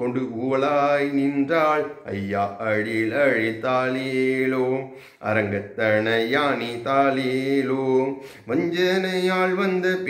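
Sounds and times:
man singing unaccompanied lullaby: 0:00.0 - 0:10.0.

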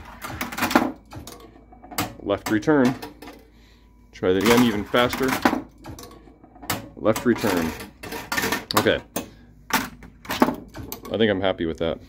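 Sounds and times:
pinball rolling ticks: 0:00.0 - 0:03.4, 0:04.4 - 0:09.3
pinball clattering off posts: 0:00.0 - 0:03.5, 0:04.3 - 0:11.3.

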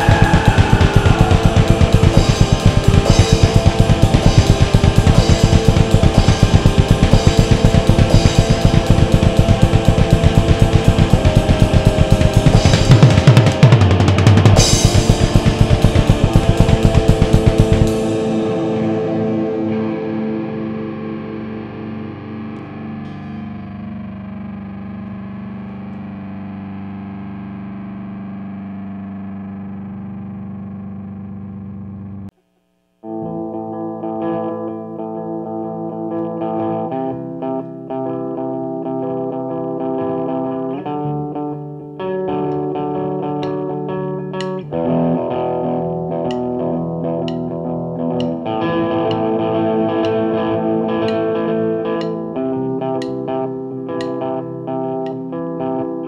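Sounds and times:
distorted electric guitar chords: 0:00.0 - 0:32.3, 0:33.0 - 0:56.0.

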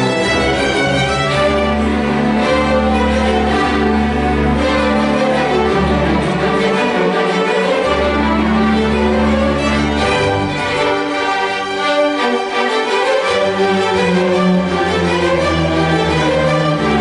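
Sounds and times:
string orchestra playing: 0:00.0 - 0:17.0.

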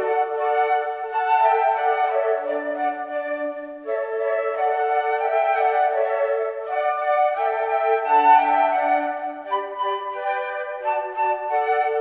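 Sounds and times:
flutes playing in harmony: 0:00.0 - 0:12.0.

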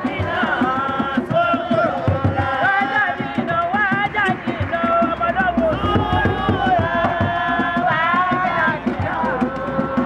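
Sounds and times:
quick steady drumming: 0:00.0 - 0:10.0
voices singing and calling: 0:00.0 - 0:10.0.

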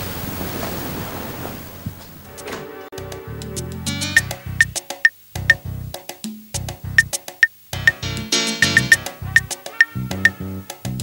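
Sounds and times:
steady background hiss: 0:03.8 - 0:09.8.

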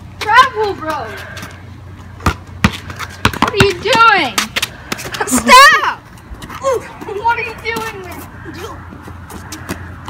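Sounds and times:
boy shouting: 0:00.2 - 0:01.1, 0:05.3 - 0:06.0, 0:06.6 - 0:08.8
basketball bouncing on concrete: 0:00.2 - 0:05.3.

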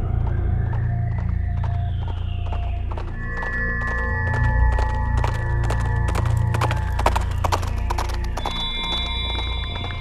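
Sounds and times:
background music with low tones: 0:00.0 - 0:10.0
horses galloping hoofbeats: 0:00.0 - 0:10.0.

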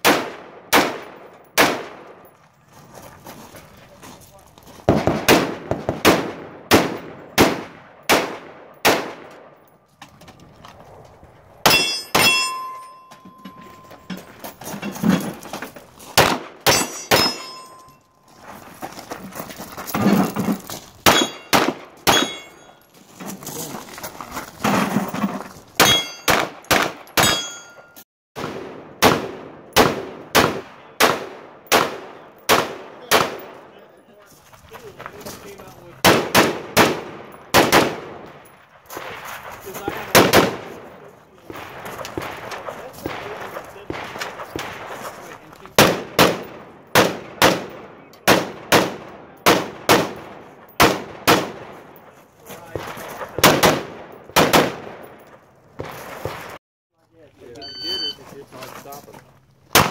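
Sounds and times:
rifle gunshots: 0:00.0 - 0:02.2, 0:04.9 - 0:09.6, 0:16.2 - 0:17.6, 0:21.0 - 0:22.6, 0:25.8 - 0:27.4, 0:28.4 - 0:33.8, 0:36.0 - 0:38.4, 0:39.9 - 0:52.1, 0:53.3 - 0:56.5
short metallic ring: 0:11.7 - 0:14.3, 0:16.7 - 0:18.2, 0:21.1 - 0:22.9, 0:25.8 - 0:26.4, 0:27.2 - 0:28.0.

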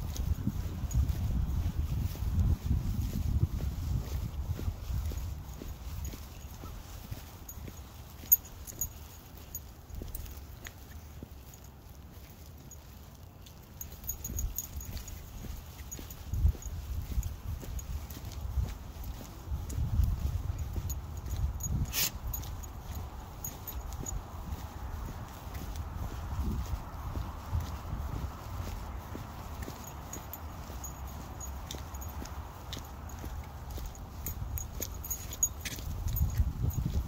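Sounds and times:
footsteps on wet concrete: 0:00.0 - 0:37.0.

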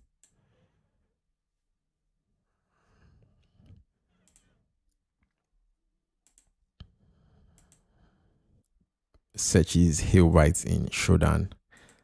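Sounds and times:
faint computer mouse clicks: 0:04.2 - 0:04.5, 0:06.2 - 0:06.9, 0:07.5 - 0:07.9.

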